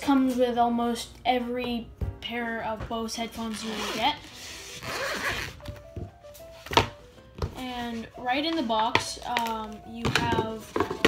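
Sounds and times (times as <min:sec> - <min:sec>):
background music tune: 0:00.0 - 0:11.0
case rubbing: 0:03.8 - 0:05.8.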